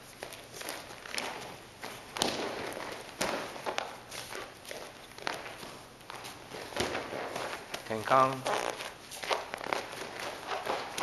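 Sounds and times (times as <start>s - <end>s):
bare feet shuffling on mat: 0.0s - 11.0s
cloth uniform rustling: 0.0s - 11.0s.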